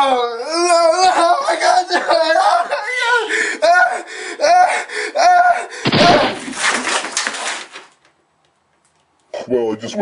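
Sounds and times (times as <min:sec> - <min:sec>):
man yelling in anguish: 0:00.0 - 0:05.7.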